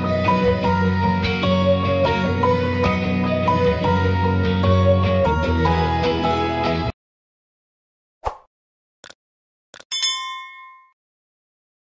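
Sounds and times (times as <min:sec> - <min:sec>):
bright bell ding: 0:09.9 - 0:11.0.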